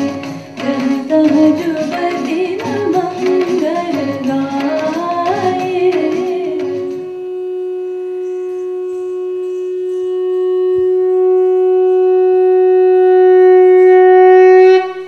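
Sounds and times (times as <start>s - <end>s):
wind instrument long note: 4.5s - 15.0s.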